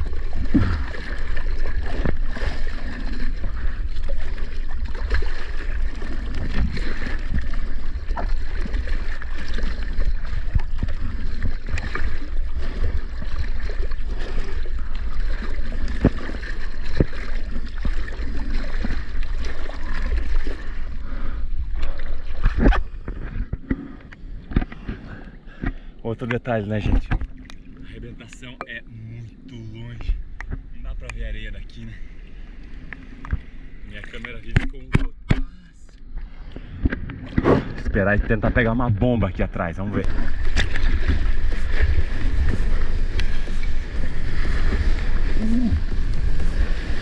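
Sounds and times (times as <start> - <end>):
seawater splashing and rushing: 0.0 - 23.5, 40.0 - 47.0
wind on microphone: 40.1 - 47.0.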